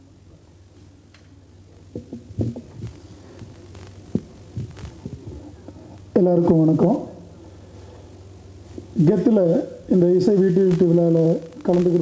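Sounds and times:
low hum from speakers: 0.0s - 12.0s
microphone handling thumps: 1.9s - 6.0s.

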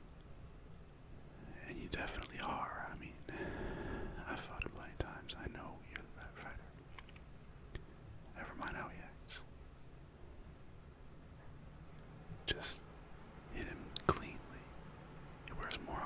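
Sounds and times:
man whispering: 1.4s - 6.8s, 8.3s - 9.5s, 12.4s - 12.9s, 13.5s - 14.7s, 15.5s - 16.0s
small mouth clicks: 2.2s - 3.1s, 13.9s - 14.3s.

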